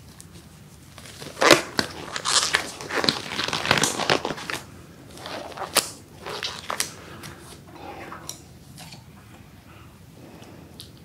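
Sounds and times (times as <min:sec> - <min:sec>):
plastic gloves crinkling: 0:00.0 - 0:08.7.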